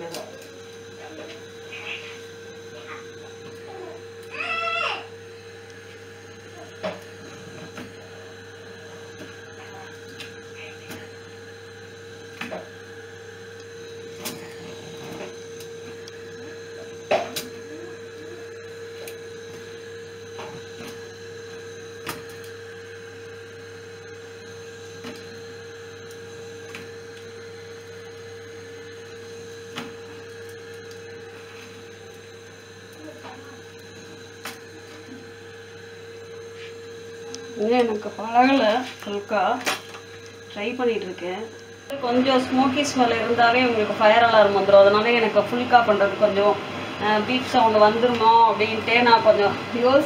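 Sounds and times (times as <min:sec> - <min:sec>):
kitchen appliance humming: 0:00.0 - 0:50.0.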